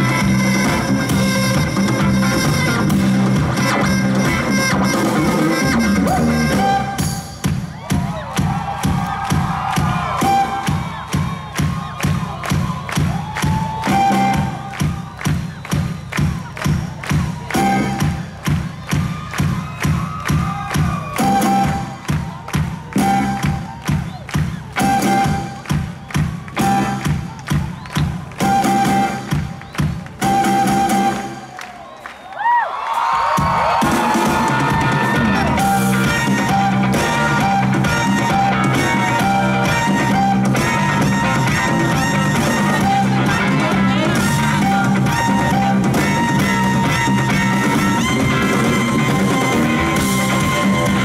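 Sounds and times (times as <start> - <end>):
live rock band playing: 0.0 - 31.5, 33.3 - 51.0
drum kit beat: 0.0 - 31.6, 33.0 - 51.0
crowd noise: 0.0 - 51.0.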